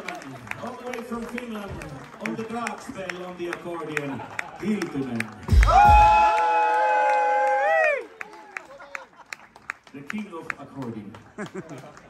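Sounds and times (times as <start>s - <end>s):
faint crowd noise: 0.0s - 6.4s
people clapping: 0.0s - 12.0s.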